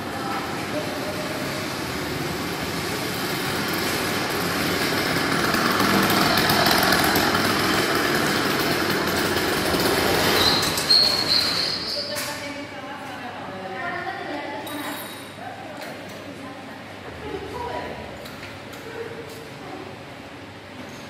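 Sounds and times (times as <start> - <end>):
motorized bicycle engine passing: 0.1 - 11.9
short high squeal: 10.3 - 12.2.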